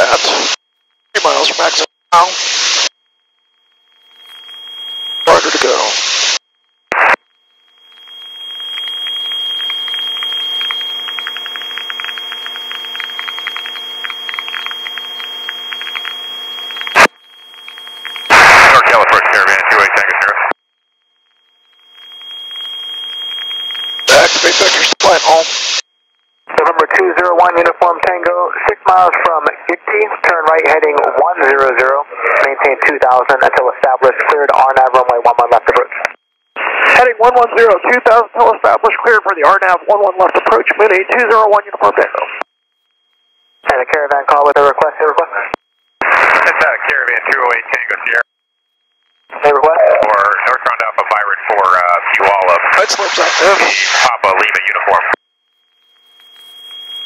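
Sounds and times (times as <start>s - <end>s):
radio high whine with buzz: 0.0s - 0.6s, 1.2s - 20.6s, 21.7s - 25.8s, 26.5s - 42.5s, 43.6s - 48.2s, 49.1s - 55.2s
static hiss bursts: 1.2s - 2.9s, 5.3s - 7.2s, 24.1s - 25.8s, 52.6s - 54.1s
controller's voice over radio: 18.4s - 20.4s, 24.1s - 25.5s, 49.4s - 55.2s.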